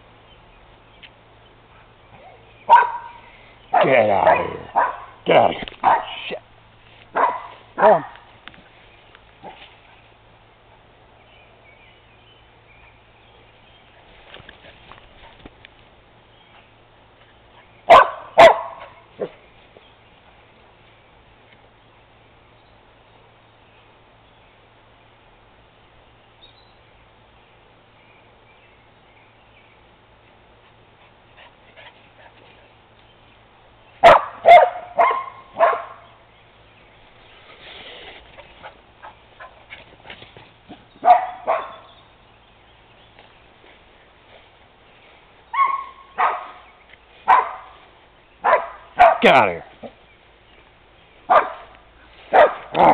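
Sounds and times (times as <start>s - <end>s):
dog barking: 2.2s - 5.2s, 5.8s - 6.2s, 7.1s - 8.2s, 17.9s - 19.4s, 34.0s - 36.1s, 41.0s - 41.9s, 45.5s - 46.6s, 47.3s - 47.8s, 48.4s - 50.0s, 51.3s - 51.7s, 52.3s - 52.9s.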